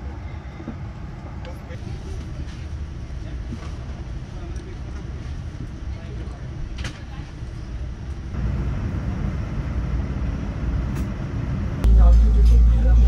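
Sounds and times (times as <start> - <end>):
airliner cabin rumble: 0.0 - 13.0.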